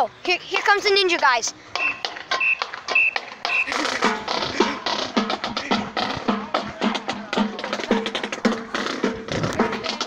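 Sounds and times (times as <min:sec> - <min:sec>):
short high tones: 0:01.8 - 0:03.8
drumline playing: 0:01.8 - 0:10.0.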